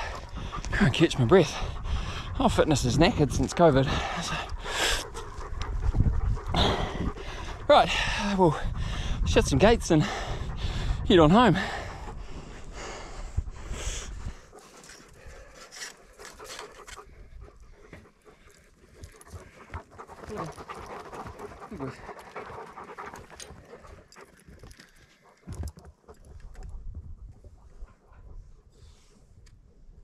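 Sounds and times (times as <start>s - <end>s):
dogs panting: 0.0s - 30.0s.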